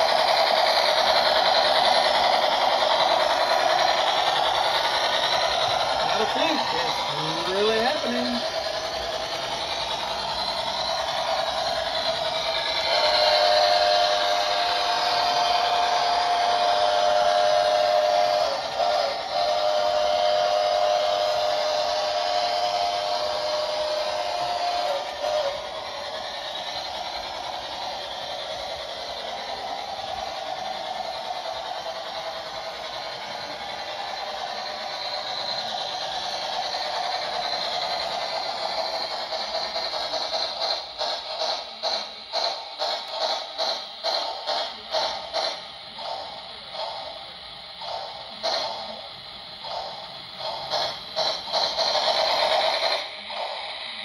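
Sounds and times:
model train motor hum: 0.0 - 54.0
electronic train whistle: 11.0 - 26.4.

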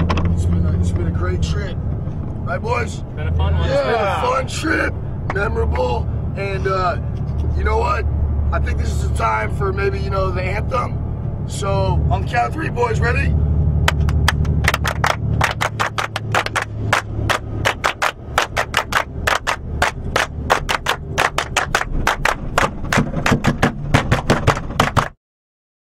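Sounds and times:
bus engine hum: 0.0 - 25.2
group clapping in rhythm: 13.8 - 25.2.

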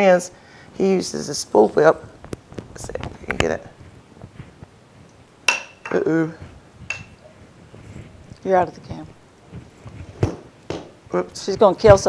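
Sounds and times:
faint handling noise: 2.0 - 12.0.

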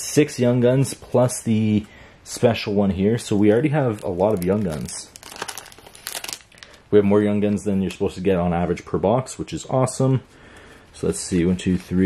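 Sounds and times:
plastic wrapper crinkling: 3.4 - 6.8.

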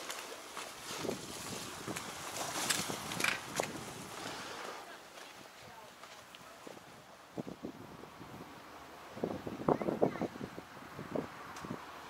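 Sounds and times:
footsteps down outdoor steps: 0.0 - 7.6
wind on microphone: 0.8 - 4.8, 6.6 - 12.0.

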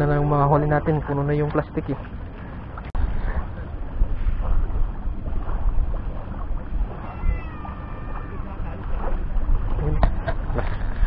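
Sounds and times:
steady low rumble: 0.0 - 11.0
cat meowing: 7.0 - 8.5.

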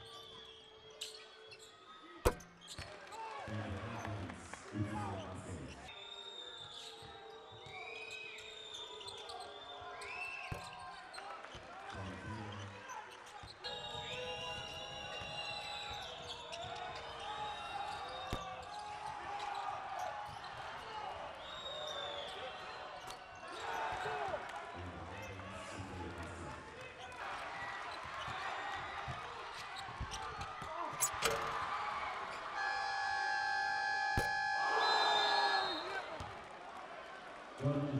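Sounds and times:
sneakers squeaking on court: 0.1 - 3.0, 15.9 - 17.2, 17.9 - 20.6, 29.0 - 33.1, 34.2 - 36.3
basketball bouncing: 2.3 - 2.6
arena voices: 30.4 - 37.9.

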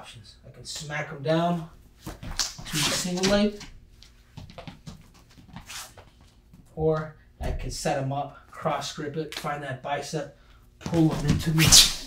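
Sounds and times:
light scuffs: 2.0 - 6.5.

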